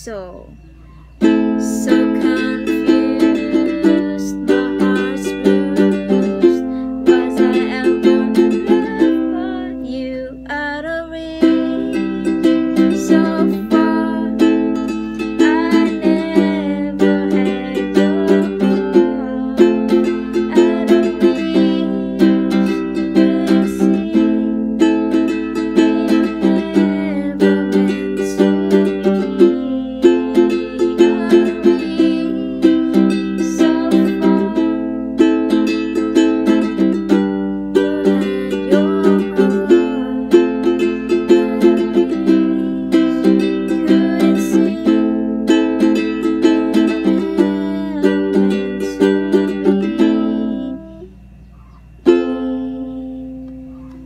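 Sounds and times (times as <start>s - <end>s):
ukulele strumming: 1.2s - 54.0s
woman softly singing: 1.5s - 34.9s, 35.5s - 51.2s.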